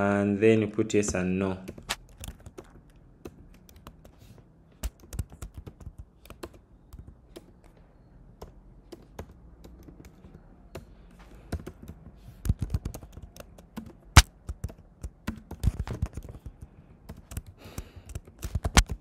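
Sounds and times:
typing on computer keyboard: 0:01.5 - 0:19.0.

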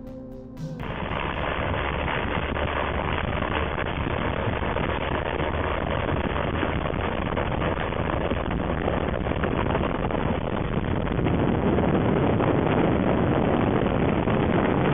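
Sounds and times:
wind rush: 0:00.9 - 0:14.9.

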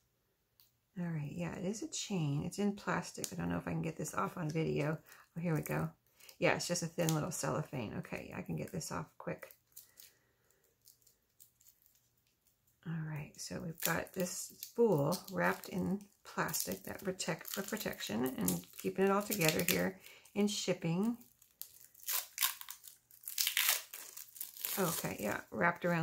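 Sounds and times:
faint cellophane wrap ticks: 0:09.4 - 0:12.9, 0:13.7 - 0:20.3.

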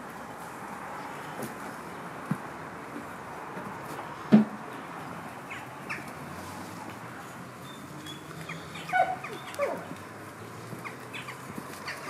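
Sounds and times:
high-pitched animal cries: 0:08.7 - 0:09.9.

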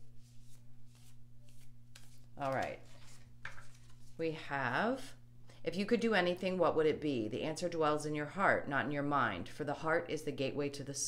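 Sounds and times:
low steady hum: 0:00.0 - 0:11.0
cards being shuffled: 0:00.1 - 0:04.2.

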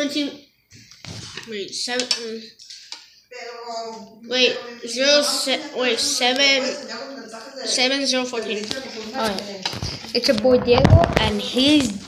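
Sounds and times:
boys' voices: 0:00.0 - 0:00.5, 0:01.4 - 0:12.0.

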